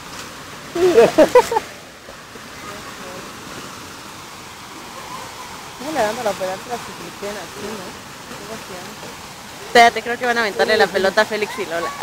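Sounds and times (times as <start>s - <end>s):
waterfall over rocks: 0.0s - 12.0s.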